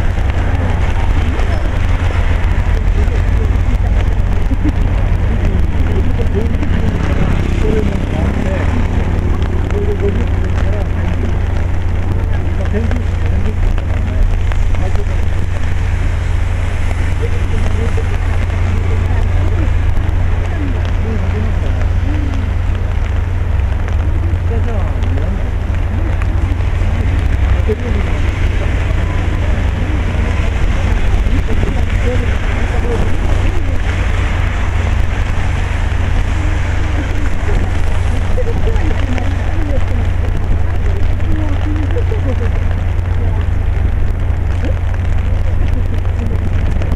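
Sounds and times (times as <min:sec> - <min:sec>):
city traffic: 0:00.0 - 0:46.9
faint voices: 0:00.0 - 0:46.9
rain: 0:00.0 - 0:46.9
wind rumble on microphone: 0:00.0 - 0:46.9.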